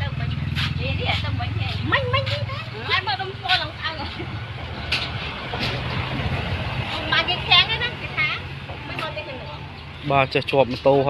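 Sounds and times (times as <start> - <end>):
people talking: 0.0 - 4.4, 6.9 - 11.0.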